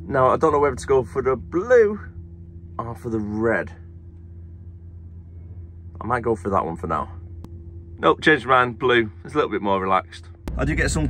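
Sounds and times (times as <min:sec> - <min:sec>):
diesel engine idling: 0:10.5 - 0:11.0.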